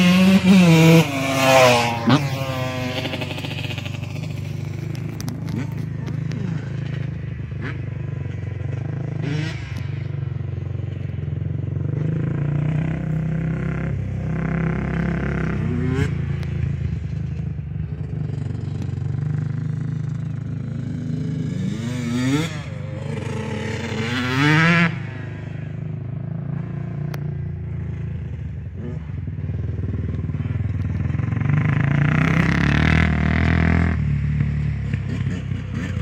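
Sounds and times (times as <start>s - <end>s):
dirt bike engine revving: 0.0s - 10.0s, 19.2s - 25.8s, 29.9s - 36.0s
quad engine running: 0.0s - 36.0s.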